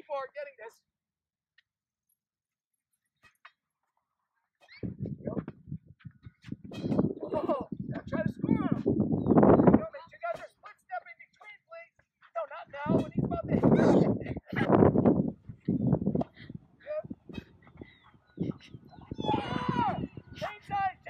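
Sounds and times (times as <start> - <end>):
voices talking and calling out: 4.6 - 21.0.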